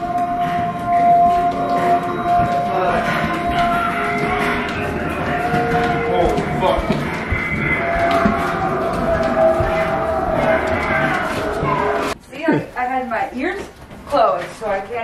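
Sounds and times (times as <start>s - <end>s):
moan-like droning tones: 0.0s - 12.2s.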